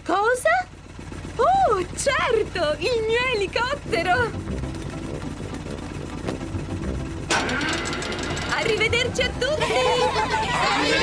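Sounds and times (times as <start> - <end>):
cartoon helicopter engine and rotor: 0.0 - 11.0.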